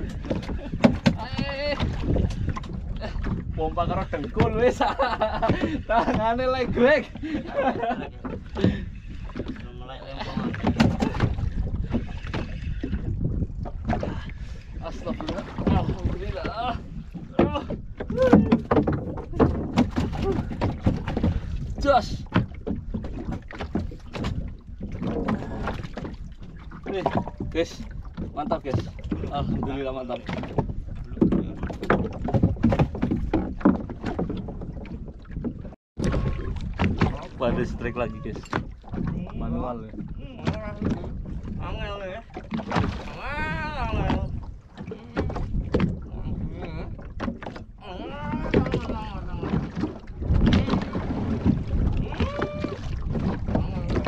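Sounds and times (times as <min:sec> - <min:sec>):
wind and water rumble: 0:00.0 - 0:54.0.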